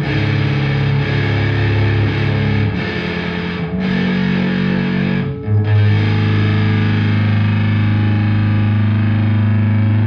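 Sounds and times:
distorted electric bass note: 0.0 - 10.0.

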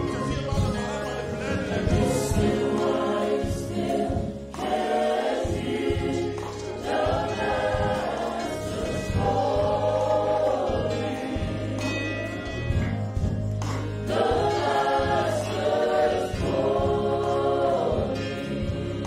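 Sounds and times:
group singing gospel through pa: 0.0 - 19.0.

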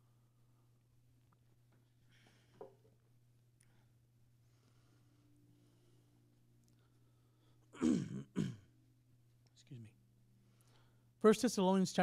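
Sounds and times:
man clearing his throat: 7.8 - 8.7.

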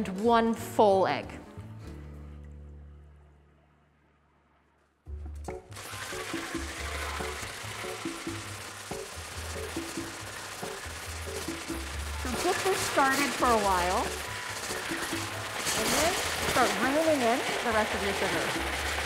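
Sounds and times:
background music: 0.0 - 19.0
electric hand blender whisking: 5.7 - 19.0.

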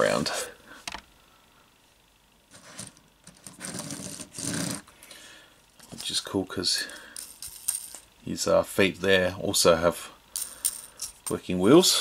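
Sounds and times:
plastic figure scraping and rubbing: 2.5 - 4.9.

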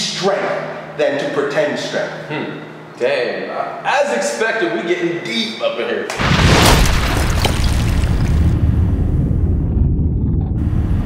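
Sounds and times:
deep low rumble: 7.2 - 11.0.

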